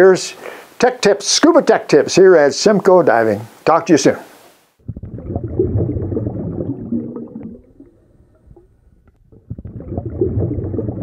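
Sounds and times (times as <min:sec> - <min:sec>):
water bubbling and gurgling: 0:04.8 - 0:11.0.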